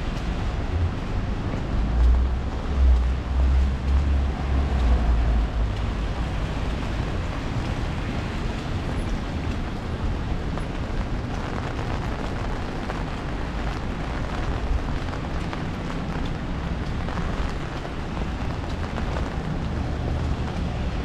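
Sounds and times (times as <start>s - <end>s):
rain on an umbrella: 0.0s - 21.0s
traffic rumble on wet street: 0.0s - 21.0s.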